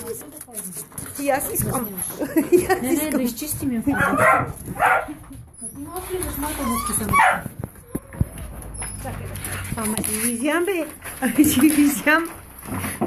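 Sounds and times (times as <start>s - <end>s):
puppies yapping: 3.9s - 9.0s.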